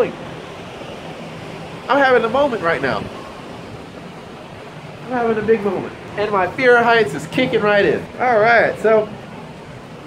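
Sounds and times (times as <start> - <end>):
distant ocean surf: 0.0 - 10.0
steady wind: 0.0 - 10.0
wind rushing over microphone: 0.0 - 10.0.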